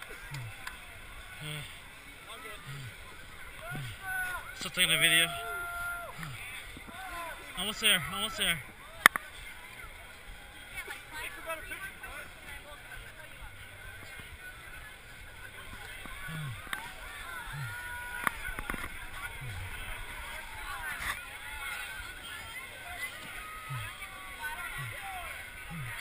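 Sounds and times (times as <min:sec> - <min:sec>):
crowd chattering and calling out: 0:00.0 - 0:26.0.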